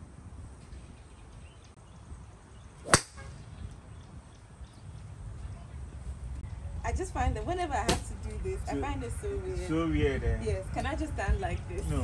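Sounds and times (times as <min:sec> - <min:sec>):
golf club striking ball: 0:02.8 - 0:03.4.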